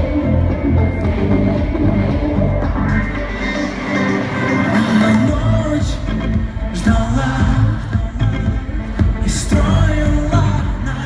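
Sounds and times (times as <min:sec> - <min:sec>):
loud live pop music with heavy bass: 0:00.0 - 0:11.0.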